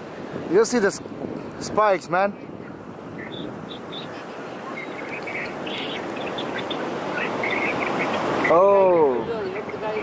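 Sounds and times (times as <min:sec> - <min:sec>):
surf: 0:00.0 - 0:10.0
wind: 0:00.0 - 0:10.0
high bird chirps: 0:03.2 - 0:08.5.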